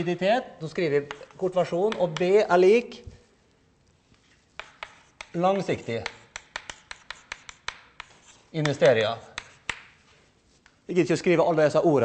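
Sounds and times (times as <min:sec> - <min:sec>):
chalk tapping on chalkboard: 0:01.0 - 0:02.5, 0:04.4 - 0:10.8.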